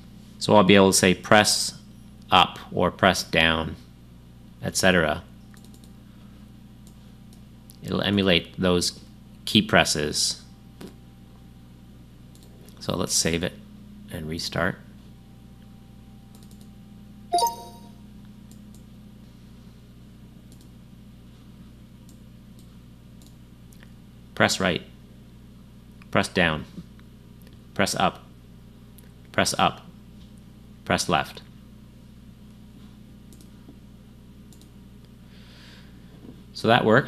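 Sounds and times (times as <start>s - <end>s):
low electrical hum: 0.0s - 37.0s
faint mouse clicks: 5.5s - 5.9s, 6.8s - 7.9s, 12.3s - 12.8s, 16.3s - 16.7s, 18.5s - 18.9s, 20.5s - 20.7s, 22.0s - 23.9s, 33.3s - 33.5s, 34.5s - 34.7s
computer mouse clicks: 5.6s - 5.9s, 12.3s - 12.5s, 16.3s - 16.7s, 34.5s - 34.7s
two-note computer chime: 17.3s - 18.0s.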